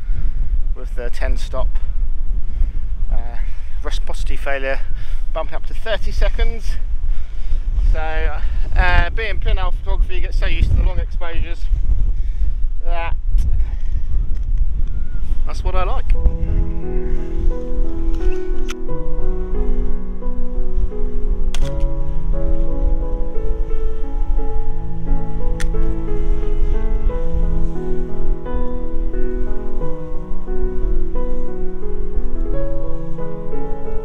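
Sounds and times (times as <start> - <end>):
wind rumble on microphone: 0.0 - 34.0
slow keyboard music: 14.8 - 34.0.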